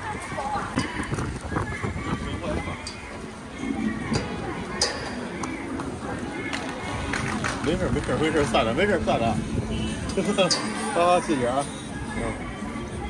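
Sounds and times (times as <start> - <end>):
indistinct voices: 0.0 - 13.0.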